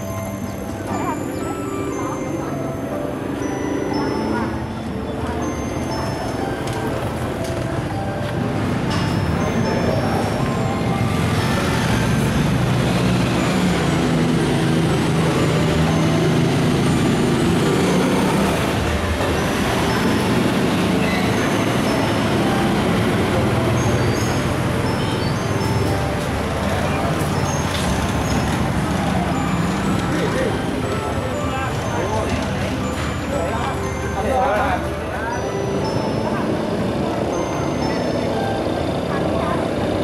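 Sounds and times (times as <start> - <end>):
motorcycle engines passing: 0.0 - 40.0
traffic noise: 0.0 - 40.0.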